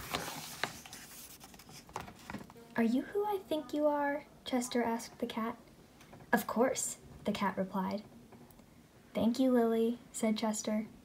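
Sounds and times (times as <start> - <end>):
book page turning: 0.0 - 2.6.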